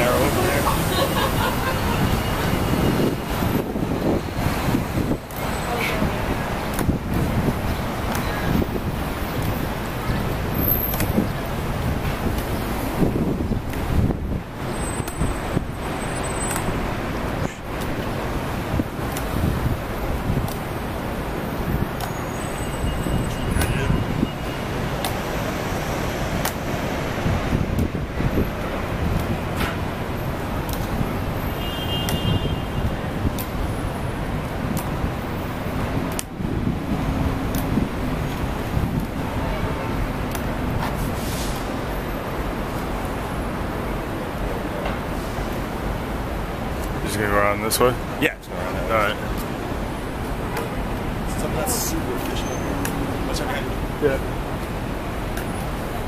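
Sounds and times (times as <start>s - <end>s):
traffic rumble: 0.0s - 56.0s.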